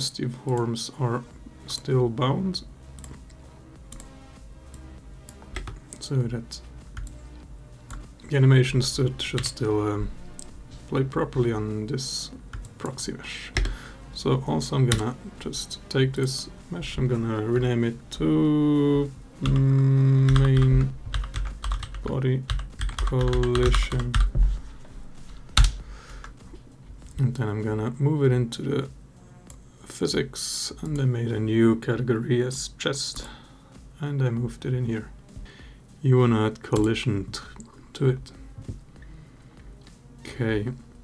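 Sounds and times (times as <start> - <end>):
keyboard and mouse clicks: 4.7 - 6.1, 25.5 - 26.4.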